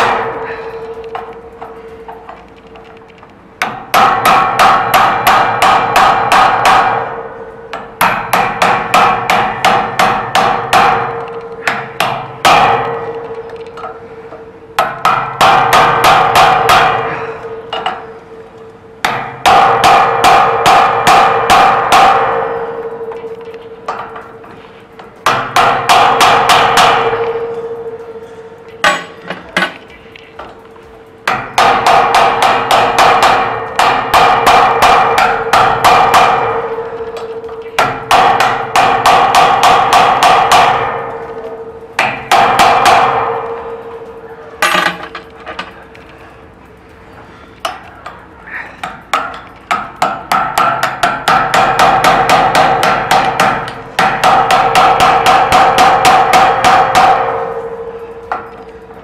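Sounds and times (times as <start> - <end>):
hammer striking metal lock: 19.0 - 29.9, 31.3 - 45.9.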